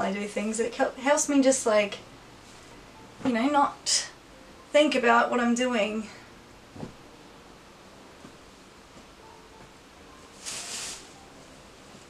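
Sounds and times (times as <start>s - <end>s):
fabric swish: 6.7s - 7.0s, 10.3s - 11.2s
clothes rustling: 6.7s - 7.1s, 10.2s - 11.2s.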